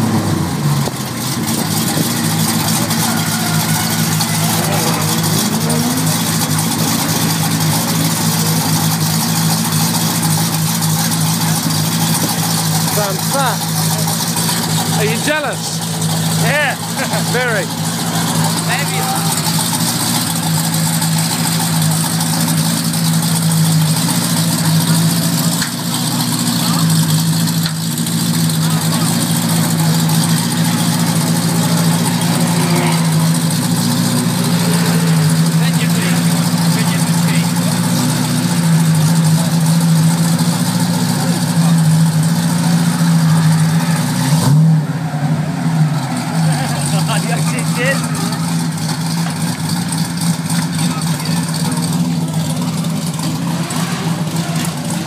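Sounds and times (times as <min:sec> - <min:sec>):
car engine idling: 0:00.0 - 0:55.0
engine revving: 0:00.0 - 0:55.0.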